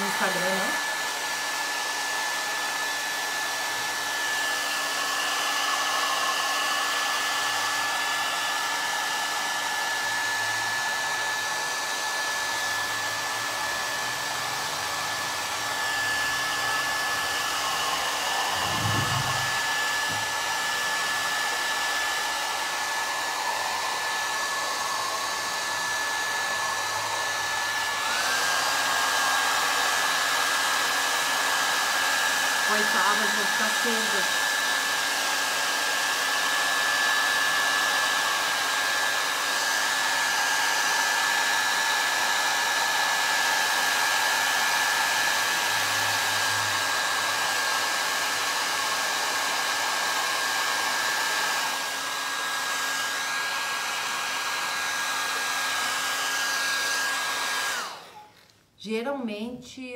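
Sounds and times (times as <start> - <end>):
hair dryer motor whine: 0.0 - 59.9
hair dryers blowing: 0.0 - 59.9.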